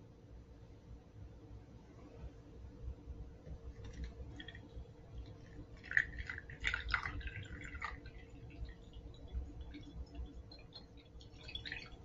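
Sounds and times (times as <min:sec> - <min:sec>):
water trickling onto gravel: 0:03.8 - 0:12.0.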